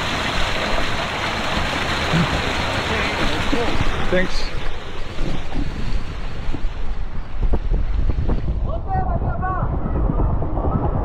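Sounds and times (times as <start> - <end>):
water and wind rushing: 0.0 - 11.0.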